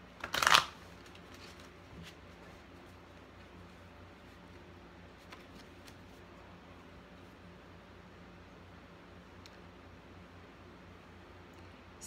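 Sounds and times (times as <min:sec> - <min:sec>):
cards rustling: 0:00.2 - 0:03.0, 0:05.1 - 0:06.4.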